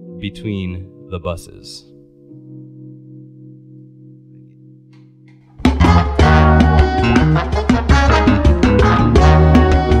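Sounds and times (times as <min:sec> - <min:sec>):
funk band playing: 0:05.6 - 0:10.0.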